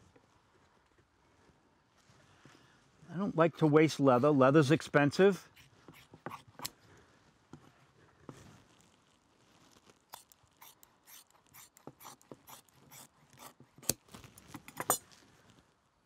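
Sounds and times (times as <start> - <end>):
leather rustling: 8.2 - 15.7
scissors snipping leather: 10.1 - 15.1.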